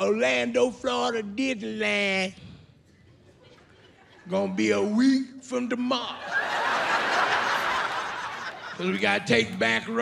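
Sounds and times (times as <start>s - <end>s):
audience laughing: 3.1s - 4.6s, 6.2s - 9.6s.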